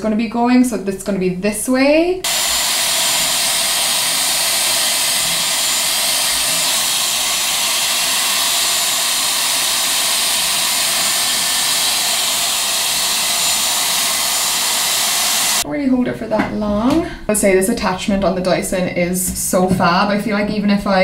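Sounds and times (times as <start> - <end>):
hair styler blowing hot air: 2.2 - 15.6.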